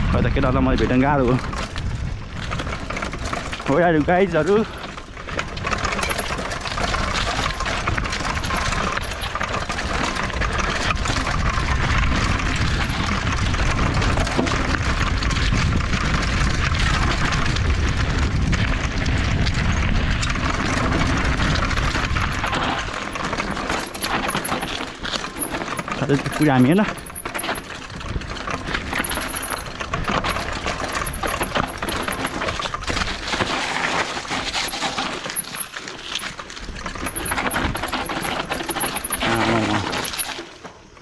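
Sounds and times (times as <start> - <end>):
bike rattling: 0.0 - 41.0
tyres crunching over loose stones: 0.0 - 41.0.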